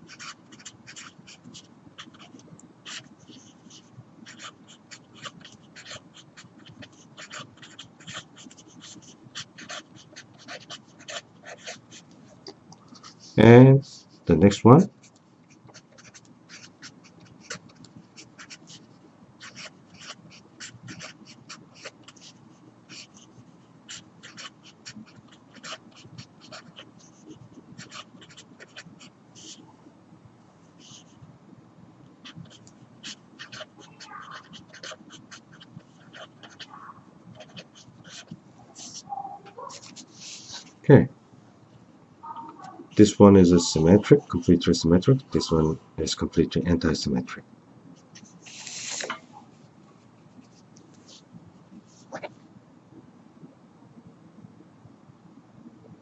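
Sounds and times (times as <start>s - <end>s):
felt-tip marker scratching on paper: 0.0s - 12.0s, 15.5s - 29.6s, 32.2s - 40.8s.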